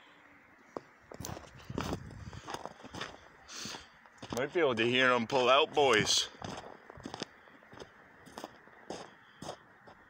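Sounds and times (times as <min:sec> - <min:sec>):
footsteps in snow: 0:01.1 - 0:04.6, 0:06.3 - 0:10.0.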